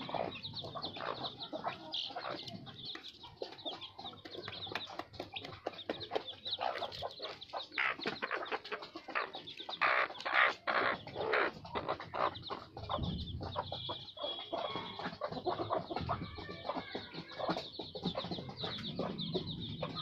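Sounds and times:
chicks peeping: 0.0s - 20.0s
hen clucking: 0.0s - 20.0s.

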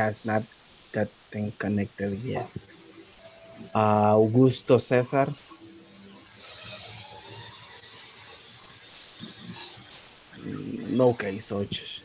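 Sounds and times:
steady hissing noise: 0.0s - 12.0s.

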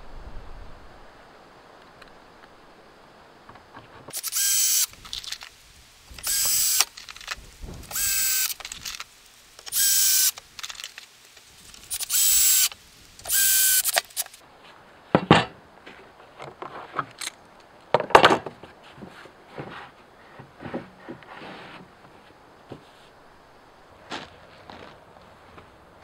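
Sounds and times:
cordless drill driving screws: 4.1s - 5.5s, 6.1s - 11.0s, 11.7s - 14.4s.

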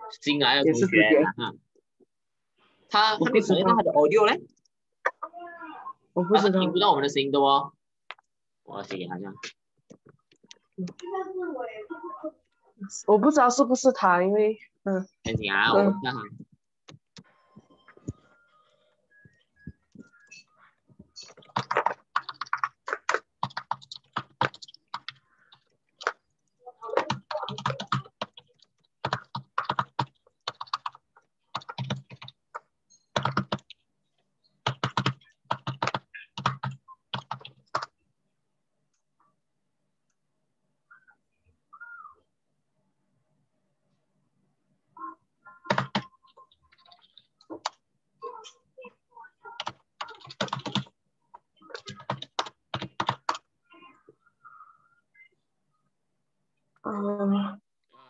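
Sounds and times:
typing on computer keyboard: 21.3s - 26.2s, 26.9s - 33.8s, 34.6s - 38.0s, 45.7s - 47.8s, 49.6s - 51.0s, 51.7s - 53.5s.

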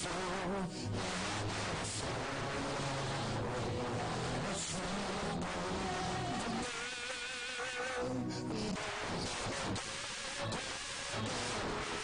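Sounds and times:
lead singer singing: 0.0s - 12.0s
choir singing: 1.0s - 12.0s.

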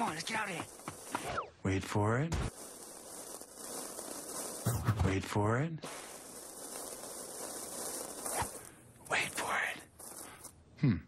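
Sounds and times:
steady hiss: 0.0s - 10.6s.

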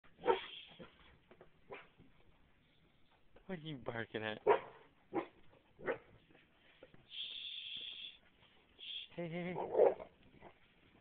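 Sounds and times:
dog barking: 0.2s - 1.0s, 1.7s - 2.0s, 4.4s - 6.1s, 9.6s - 10.6s.

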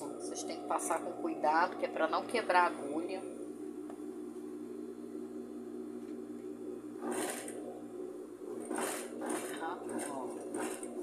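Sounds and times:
sewing machine stitching: 7.0s - 7.7s, 8.5s - 11.0s.

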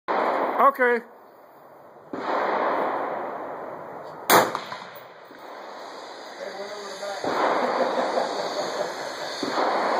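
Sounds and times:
rifle shot with echo: 0.1s - 0.8s, 2.1s - 5.8s, 7.2s - 8.1s, 9.4s - 9.9s.

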